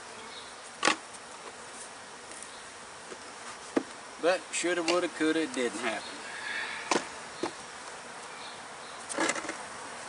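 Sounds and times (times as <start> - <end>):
honey bees buzzing: 0.0 - 10.0.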